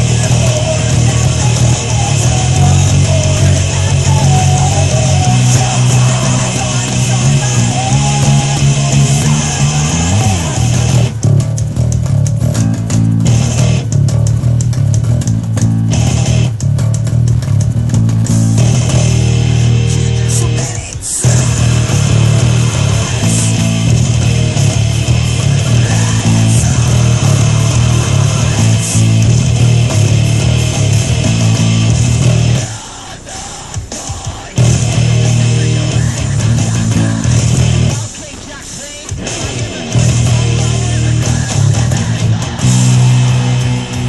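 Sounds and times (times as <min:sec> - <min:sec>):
electric bass fingerstyle: 0:00.0 - 0:32.8, 0:34.5 - 0:44.0
rock band music: 0:00.0 - 0:44.0.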